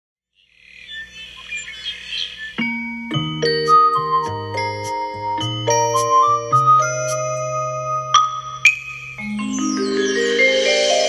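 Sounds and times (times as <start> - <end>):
birds chirping: 0.3 - 11.0.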